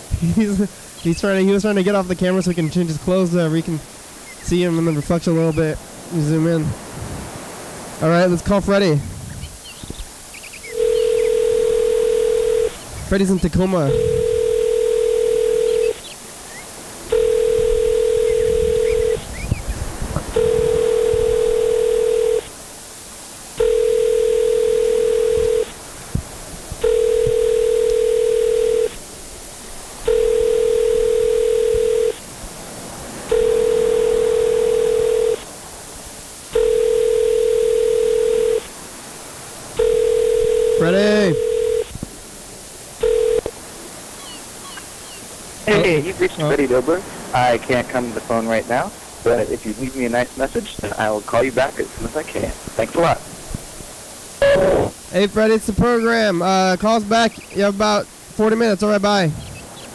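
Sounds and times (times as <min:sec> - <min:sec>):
telephone ringback tone: 0:10.7 - 0:12.8, 0:13.5 - 0:16.0, 0:17.1 - 0:19.4, 0:20.2 - 0:22.5, 0:23.6 - 0:25.8, 0:26.8 - 0:29.0, 0:30.0 - 0:32.2, 0:33.3 - 0:35.5, 0:36.5 - 0:38.7, 0:39.7 - 0:41.9, 0:43.0 - 0:43.5, 0:54.4 - 0:54.9.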